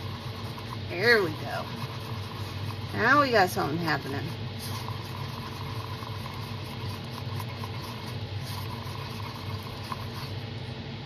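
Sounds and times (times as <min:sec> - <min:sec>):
stirring in a plastic cup: 0:00.0 - 0:10.7.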